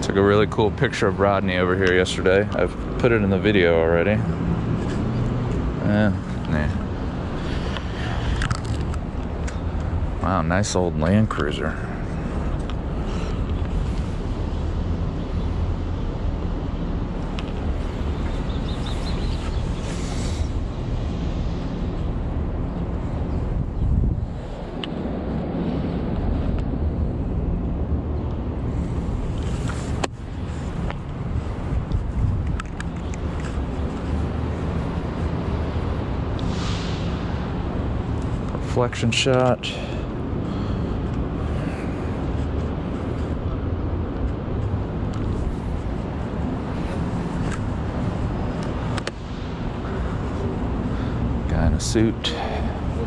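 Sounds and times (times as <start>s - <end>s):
road traffic rumble: 0.0s - 53.0s
wind on microphone: 12.3s - 38.6s.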